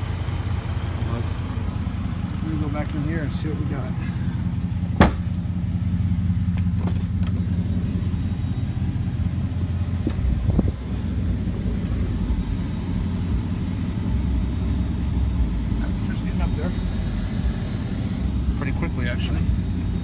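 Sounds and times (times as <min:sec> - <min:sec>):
engine idling: 0:00.0 - 0:20.0
short knocks: 0:05.0 - 0:05.3.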